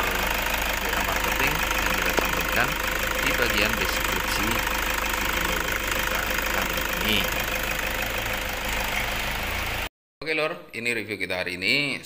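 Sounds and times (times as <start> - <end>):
diesel engine idling: 0.0 - 9.9.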